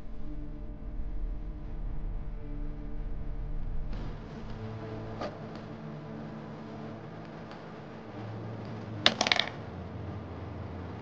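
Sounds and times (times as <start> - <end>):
small object clattering: 9.1 - 9.6.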